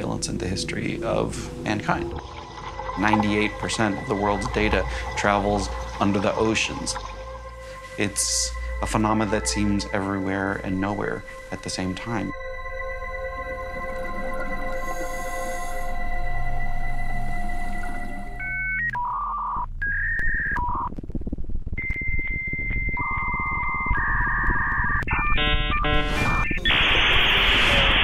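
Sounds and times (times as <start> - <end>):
low rumble: 0.0 - 18.5
steady synthesizer chord: 0.0 - 18.6
electronic beeps: 21.8 - 28.0
loud burst of static hiss: 26.0 - 28.0.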